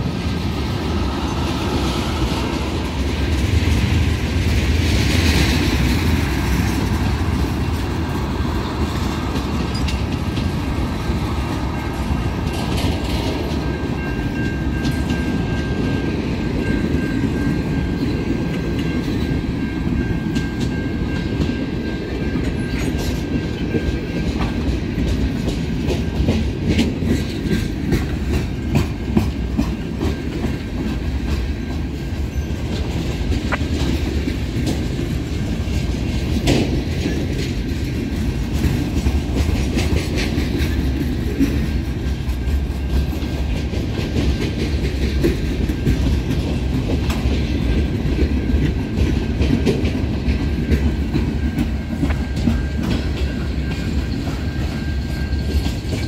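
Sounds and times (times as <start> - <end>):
freight train rumbling past: 0.0 - 56.0
wheels clanking over rail joints: 0.0 - 56.0.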